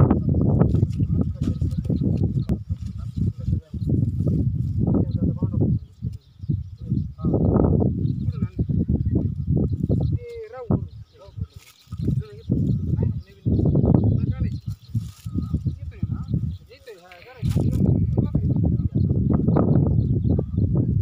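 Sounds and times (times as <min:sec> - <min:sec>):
people talking: 0:00.0 - 0:09.3, 0:10.0 - 0:19.2.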